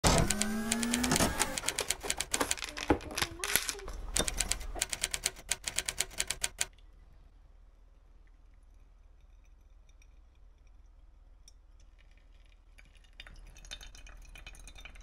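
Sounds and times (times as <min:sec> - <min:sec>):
fast sharp clicks: 0:00.0 - 0:03.4, 0:04.1 - 0:06.7.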